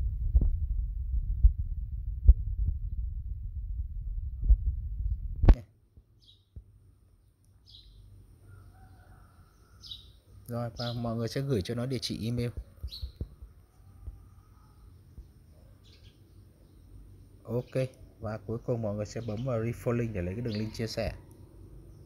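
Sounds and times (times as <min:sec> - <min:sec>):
low rumble: 0:00.0 - 0:05.6
faint high chirps: 0:07.4 - 0:22.0.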